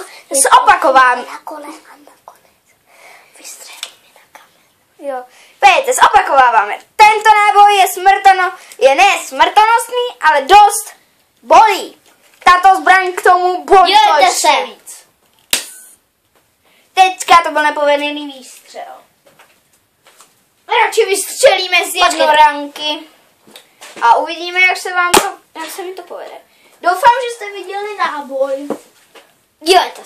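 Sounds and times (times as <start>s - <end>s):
faint whispering: 1.5s - 4.7s.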